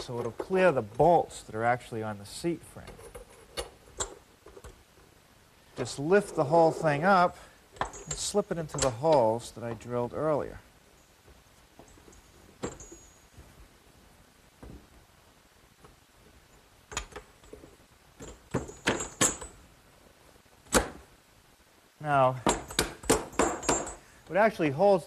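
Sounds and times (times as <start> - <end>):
metal clinks and knocks: 7.8 - 9.1, 11.8 - 13.5, 16.5 - 19.6, 22.4 - 24.1.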